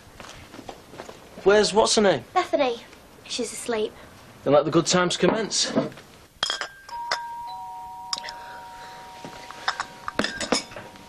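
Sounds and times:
two-note door chime: 6.9s - 11.0s.

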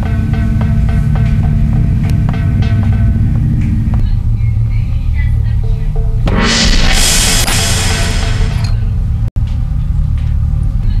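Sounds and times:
gong crash ringing: 0.0s - 3.9s, 6.2s - 9.3s.

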